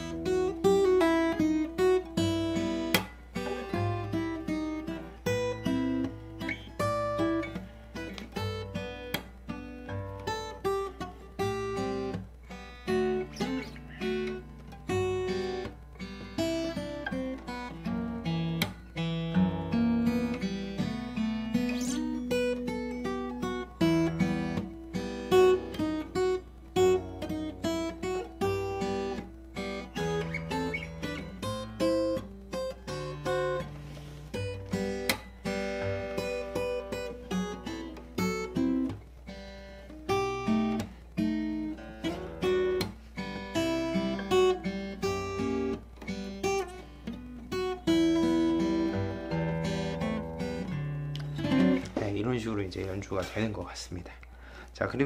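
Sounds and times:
acoustic guitar fingerstyle: 0.0s - 55.0s.

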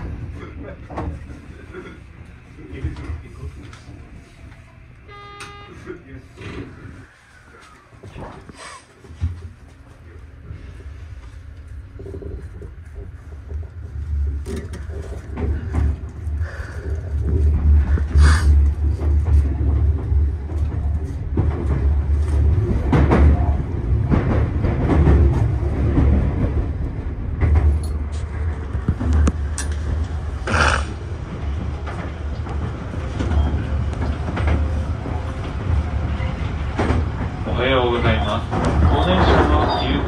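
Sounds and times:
train wheels rumbling on rails: 0.0s - 5.0s, 5.8s - 40.0s.

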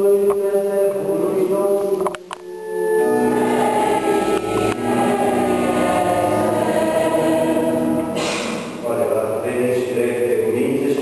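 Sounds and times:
choir singing a chant: 2.8s - 10.6s.

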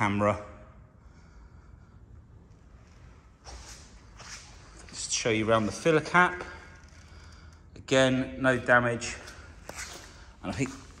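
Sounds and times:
faint breaths: 0.8s - 5.0s, 6.4s - 7.8s.

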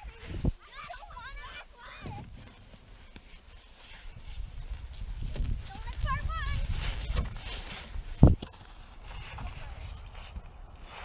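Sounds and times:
wind rumble on microphone: 0.0s - 0.6s, 4.0s - 11.0s.

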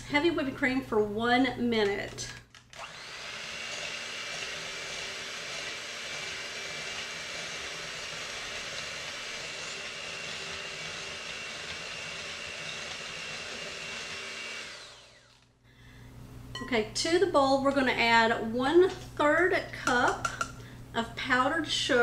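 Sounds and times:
electric hand mixer whipping cream: 2.8s - 15.4s.

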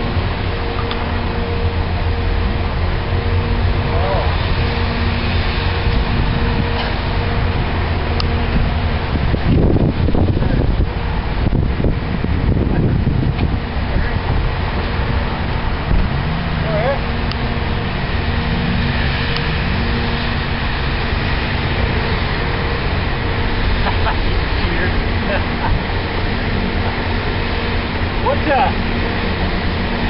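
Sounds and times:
traffic rumble: 0.0s - 30.0s.

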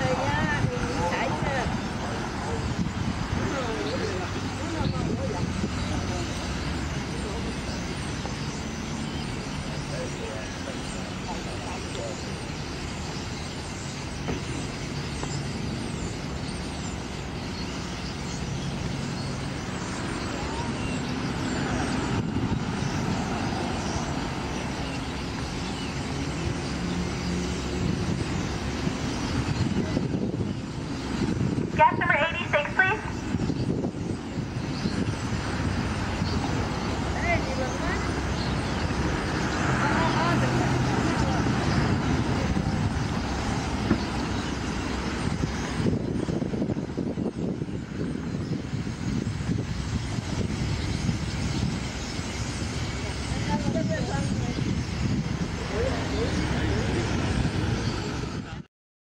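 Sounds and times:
birds squealing: 0.0s - 58.6s
traffic hum: 0.0s - 58.7s.

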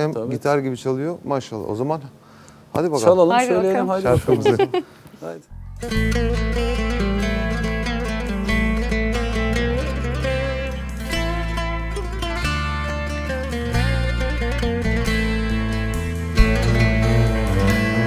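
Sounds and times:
cello: 5.5s - 18.0s
deep sustained bass notes: 5.5s - 18.0s
guitar: 5.5s - 18.0s
plucked lute: 5.5s - 18.0s.

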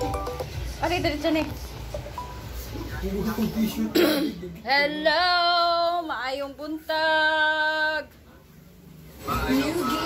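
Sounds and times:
person coughing: 3.9s - 4.5s.

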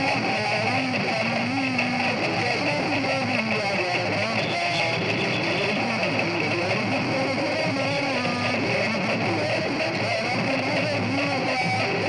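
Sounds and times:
crowd voices and singing: 0.0s - 12.0s
live band music: 0.0s - 12.0s.

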